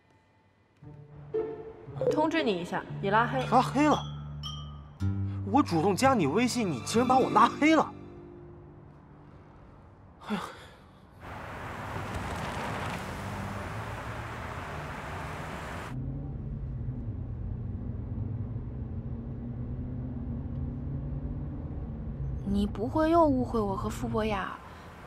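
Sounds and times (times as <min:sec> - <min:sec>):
person sighing: 0:10.2 - 0:11.0
loud rushing noise: 0:11.2 - 0:16.0
car engine drone from inside: 0:11.2 - 0:22.4.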